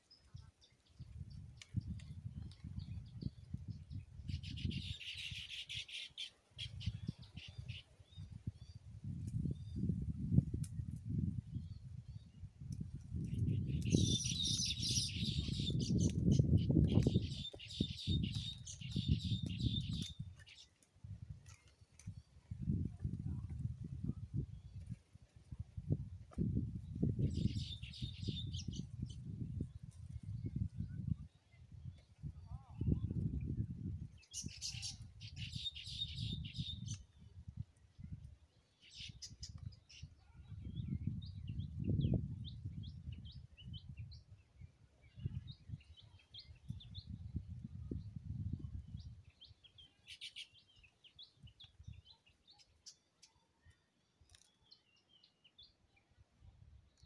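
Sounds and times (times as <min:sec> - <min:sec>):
small birds chirping: 0:00.0 - 0:09.9, 0:11.6 - 0:20.9, 0:27.0 - 0:33.3, 0:34.1 - 0:37.4, 0:38.4 - 0:56.1
birds chirping: 0:13.4 - 0:20.7.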